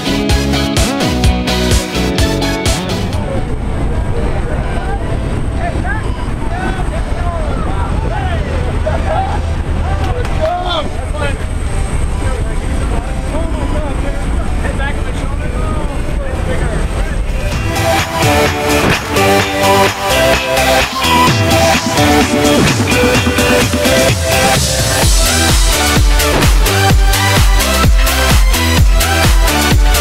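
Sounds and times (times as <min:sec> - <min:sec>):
wind noise: 0:02.8 - 0:20.0
propeller plane engine: 0:15.9 - 0:29.6.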